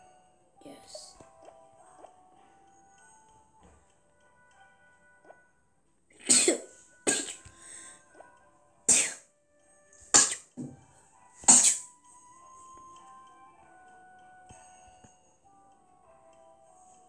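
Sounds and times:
faint soft background music: 0:00.0 - 0:17.0
child coughing: 0:06.2 - 0:07.5, 0:08.9 - 0:09.3, 0:10.1 - 0:10.6, 0:11.4 - 0:11.9.

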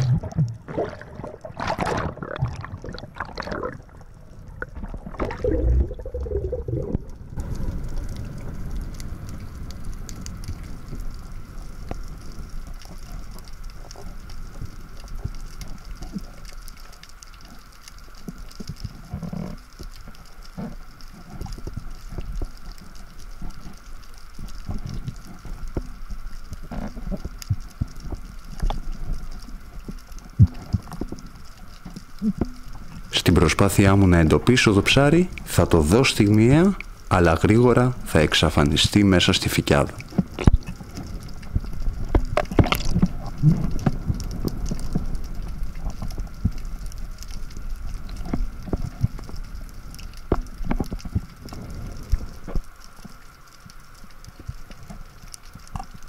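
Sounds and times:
water rushing: 0:00.0 - 0:08.4
faint underwater hum: 0:00.0 - 0:56.0
fine crackling clicks: 0:06.8 - 0:56.0.

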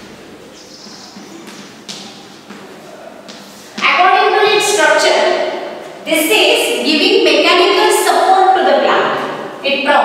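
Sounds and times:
sharp chalk taps: 0:00.8 - 0:03.9.

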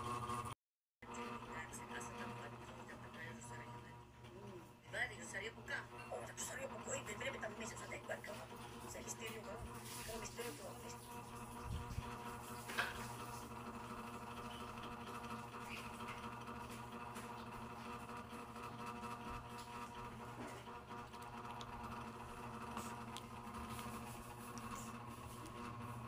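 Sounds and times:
low machine hum: 0:00.0 - 0:26.0.

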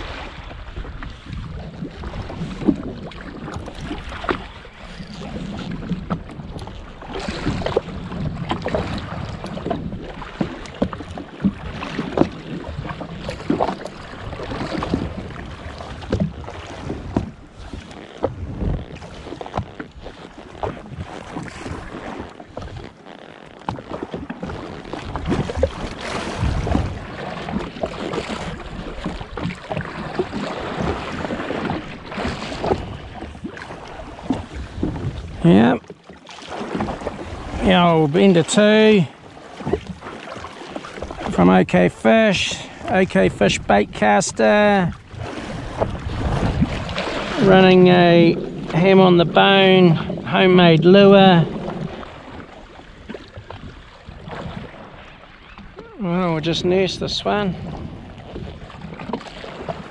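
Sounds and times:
wind buffeting microphone: 0:00.0 - 0:22.9, 0:24.2 - 0:35.9, 0:40.9 - 0:59.9
water slapping against hull: 0:00.0 - 0:59.9.

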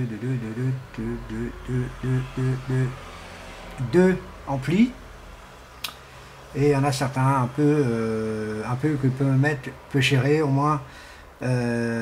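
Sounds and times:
man's hesitating voice: 0:00.0 - 0:03.0, 0:11.4 - 0:12.0
short sharp click: 0:05.8 - 0:06.0.

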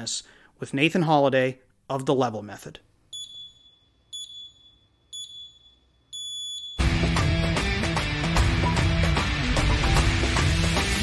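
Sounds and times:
high-pitched electronic beeps: 0:03.2 - 0:06.8
guitar music: 0:06.8 - 0:11.0.

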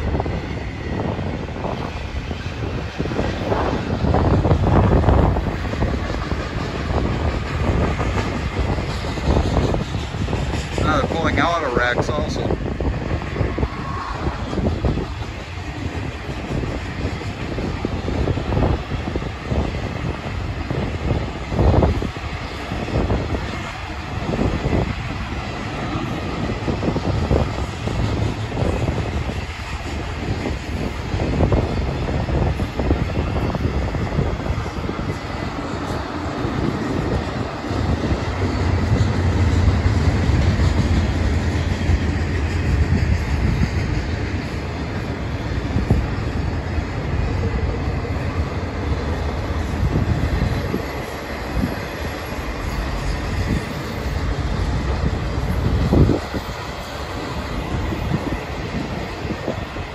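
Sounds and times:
train wheels rumbling on rails: 0:00.0 - 0:59.9
low drone: 0:12.9 - 0:15.6.

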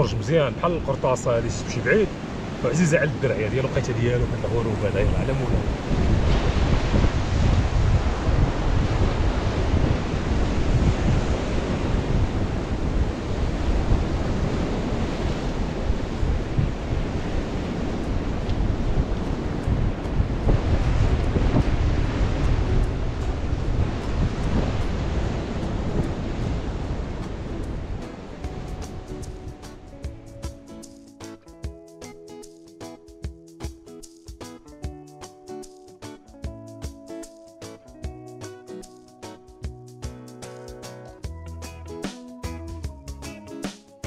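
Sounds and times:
music: 0:00.0 - 0:02.1, 0:02.7 - 0:06.2, 0:19.0 - 0:44.0
surf breaking on rocks: 0:00.0 - 0:30.0
wind on microphone: 0:04.2 - 0:30.7.

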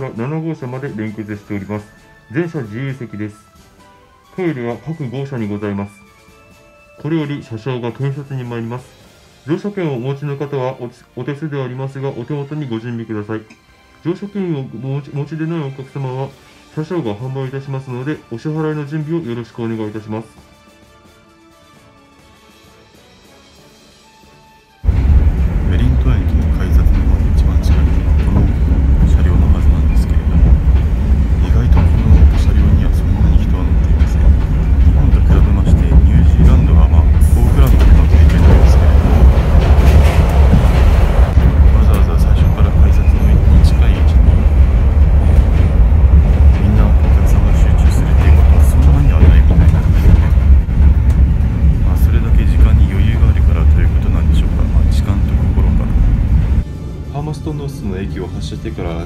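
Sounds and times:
train carriage rumbling: 0:00.0 - 0:20.4, 0:24.8 - 0:59.0
rattling and clatter from rails: 0:24.9 - 0:56.6.

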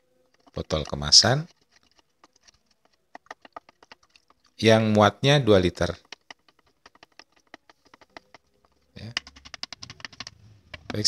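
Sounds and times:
stick knocking in plastic jug: 0:00.3 - 0:05.0, 0:05.6 - 0:11.0.

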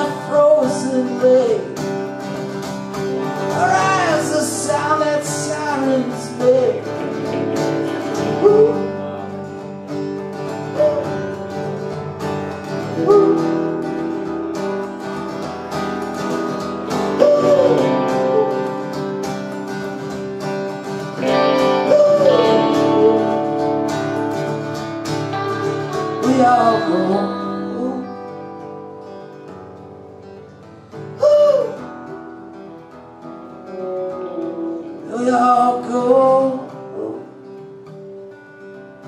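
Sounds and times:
electric guitar: 0:00.0 - 0:39.0
strummed acoustic guitar: 0:00.0 - 0:39.0.

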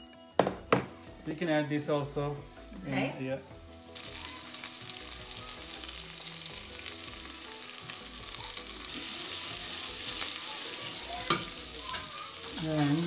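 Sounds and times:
spices sizzling in hot oil: 0:01.0 - 0:13.0.

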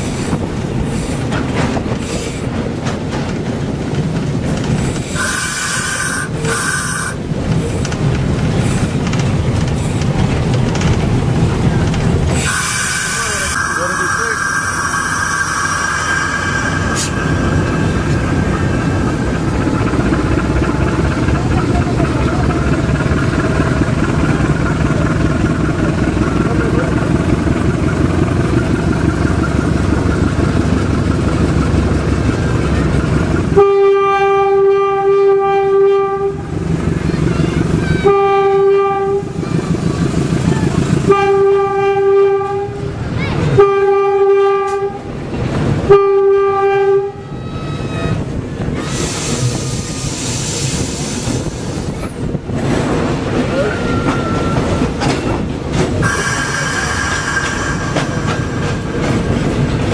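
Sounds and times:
wheels clattering on track: 0:00.0 - 0:14.2, 0:16.1 - 0:33.6, 0:48.0 - 0:59.9
diesel locomotive engine running: 0:00.0 - 0:59.9
locomotive horn blasts: 0:12.4 - 0:17.8, 0:33.6 - 0:36.5, 0:38.0 - 0:39.4, 0:41.1 - 0:42.8, 0:43.5 - 0:45.1, 0:45.9 - 0:48.2, 0:56.0 - 0:57.6.

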